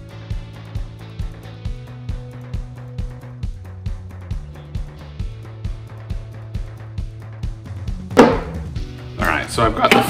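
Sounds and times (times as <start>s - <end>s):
background music with bass beat: 0.0s - 10.0s
plastic pod knocking on table: 8.2s - 8.6s.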